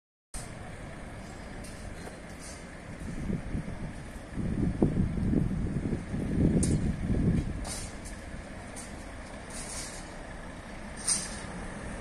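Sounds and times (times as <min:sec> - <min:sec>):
street low rumble: 0:00.3 - 0:12.0.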